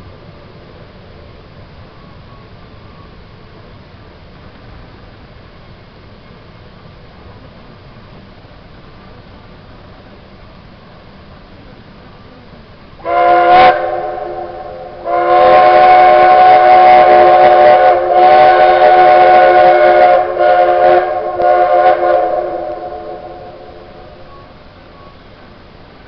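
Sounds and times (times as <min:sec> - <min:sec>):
steam whistle blasts: 0:13.0 - 0:25.1.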